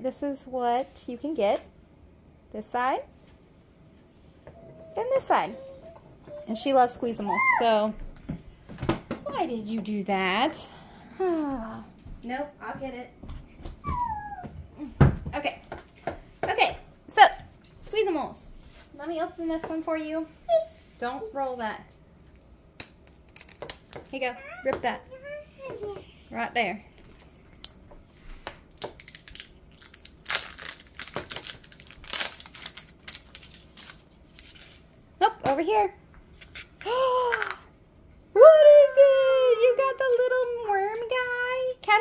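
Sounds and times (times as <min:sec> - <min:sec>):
high-pitched vocal cry gliding down: 0:13.9 - 0:14.5
plastic wrapper crinkling and tearing: 0:22.8 - 0:24.0, 0:28.7 - 0:34.8.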